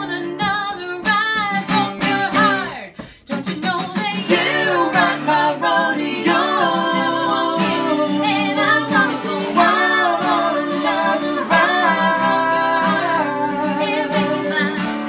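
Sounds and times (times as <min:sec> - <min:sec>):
strummed acoustic guitars: 0:00.0 - 0:15.0
woman singing: 0:00.0 - 0:15.0.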